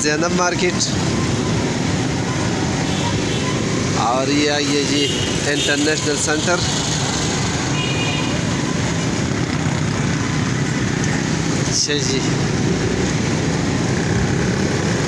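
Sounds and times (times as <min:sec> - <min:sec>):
street traffic: 0:00.0 - 0:15.0.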